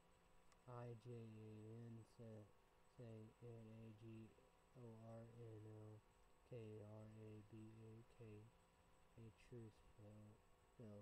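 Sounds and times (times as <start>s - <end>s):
man speaking quietly: 0.7s - 8.5s, 9.2s - 11.0s.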